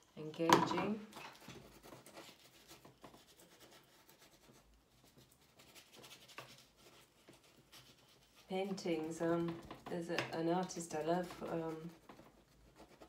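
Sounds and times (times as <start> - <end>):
paint tool scratching on canvas: 1.1 - 9.8, 10.6 - 13.0.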